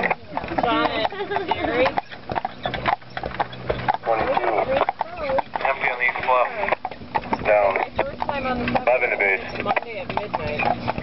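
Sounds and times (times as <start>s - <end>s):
horse hooves on pavement: 0.0s - 11.0s.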